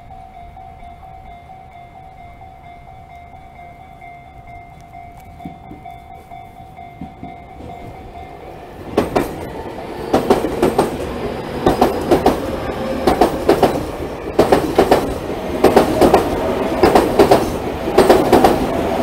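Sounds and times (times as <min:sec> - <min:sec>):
electric train passing: 0:00.0 - 0:19.0.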